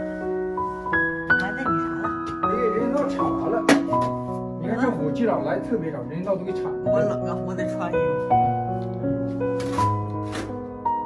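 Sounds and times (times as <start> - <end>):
piano music: 0.0 - 11.0.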